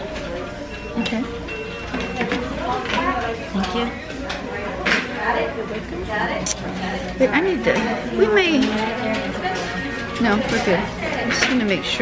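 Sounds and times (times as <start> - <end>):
indistinct voices talking: 0.0 - 12.0.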